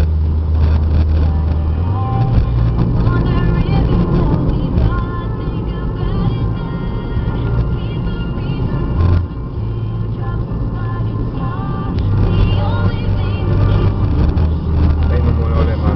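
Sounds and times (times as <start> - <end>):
car engine and tyre rumble: 0.0 - 15.9
music playing: 0.0 - 15.9.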